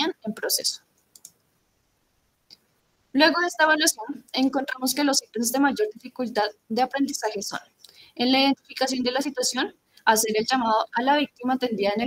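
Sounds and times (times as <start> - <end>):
faint short clicks: 1.0 - 1.4.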